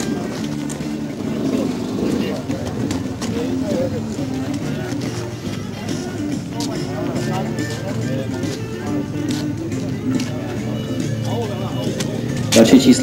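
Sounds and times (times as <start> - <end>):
dirt bike engines: 0.0 - 13.0
music over public address: 0.0 - 13.0
people talking: 0.0 - 13.0.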